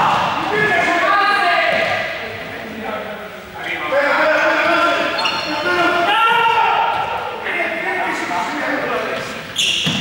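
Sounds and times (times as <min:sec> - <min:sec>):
shoes squeaking on hall floor: 0:04.3 - 0:07.2, 0:08.9 - 0:10.0
young people shouting: 0:05.7 - 0:07.5.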